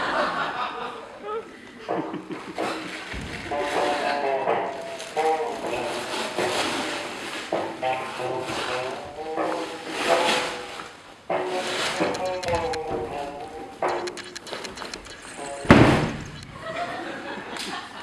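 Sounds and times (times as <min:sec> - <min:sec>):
heavy thump: 0:15.6 - 0:16.3.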